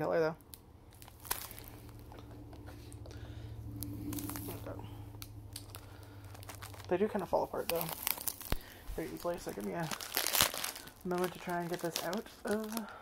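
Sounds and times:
low steady hum: 0.0 - 13.0
package crinkling and tearing: 0.4 - 2.6, 3.8 - 13.0.

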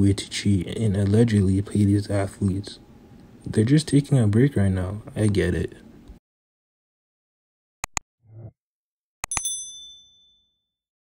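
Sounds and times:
mouse clicks: 7.8 - 8.0
bright bell ding: 9.3 - 10.7.

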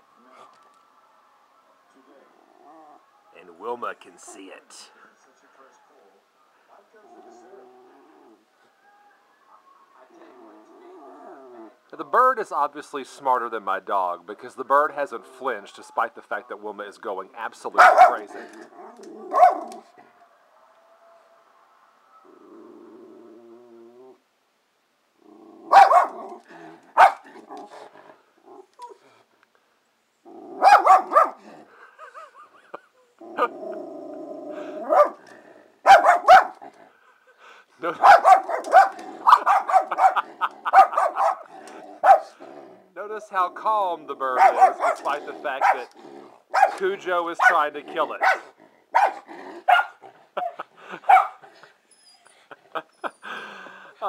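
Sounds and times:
dog growling: 2.4 - 3.0, 6.9 - 8.4, 10.2 - 11.8, 17.9 - 20.1, 22.2 - 24.2, 25.2 - 29.2, 30.2 - 31.9, 33.2 - 37.0, 38.0 - 51.7
dog barking sharply: 17.8 - 18.3, 19.3 - 19.7, 25.7 - 26.3, 27.0 - 27.4, 30.6 - 31.4, 34.9 - 35.2, 35.9 - 36.6, 38.0 - 42.3, 44.4 - 45.8, 46.6 - 46.8, 48.2 - 50.5, 51.1 - 51.4.

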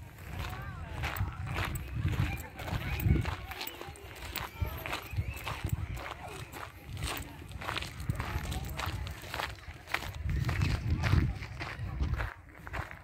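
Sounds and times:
faint voices: 0.0 - 13.0
footsteps crunching on gravel: 0.0 - 13.0.

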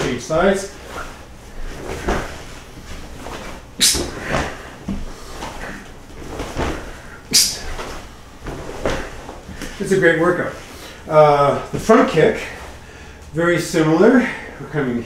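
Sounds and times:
bare feet shuffling on wooden floor: 0.0 - 13.4
kick swishes: 0.8 - 9.8.

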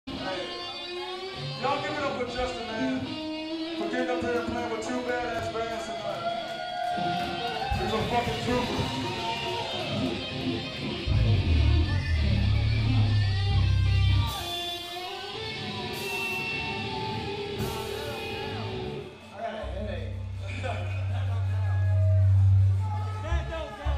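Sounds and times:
loud electric guitars: 0.1 - 23.9.

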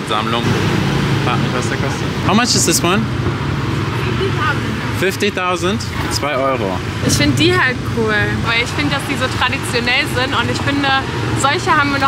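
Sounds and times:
street traffic hum: 0.0 - 12.0.

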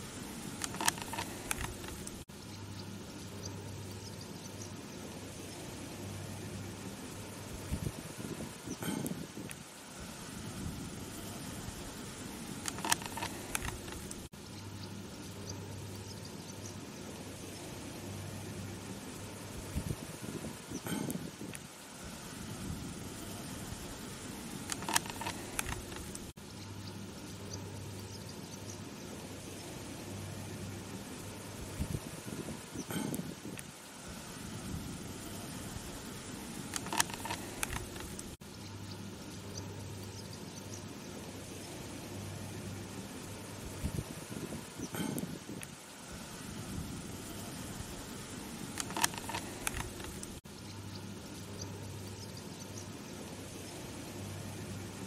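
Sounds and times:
outdoor hiss: 0.0 - 55.0.

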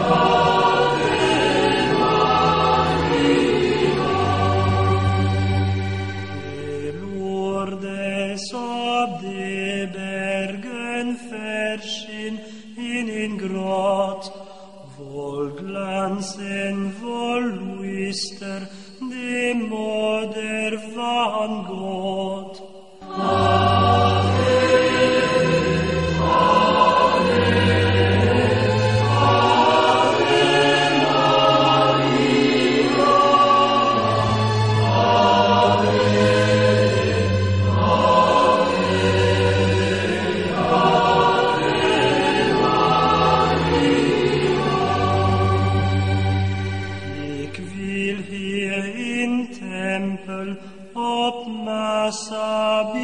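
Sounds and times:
choral music with bass line: 0.0 - 53.0
voices singing religious chant: 0.0 - 53.0.

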